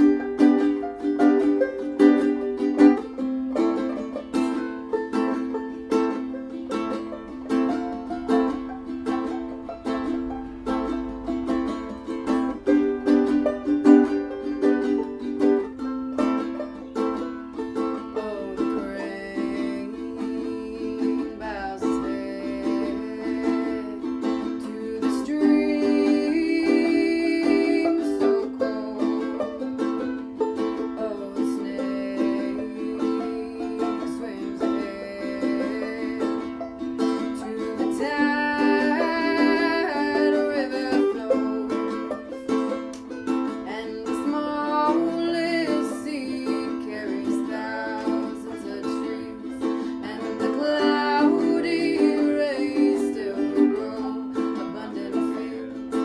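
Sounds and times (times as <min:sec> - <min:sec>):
person singing: 0:00.0 - 0:56.0
plucked string instrument: 0:00.0 - 0:56.0.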